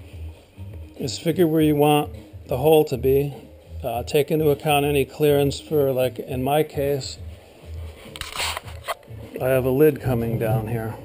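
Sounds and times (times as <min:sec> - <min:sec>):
wooden box scraping rustle: 0:08.1 - 0:09.0.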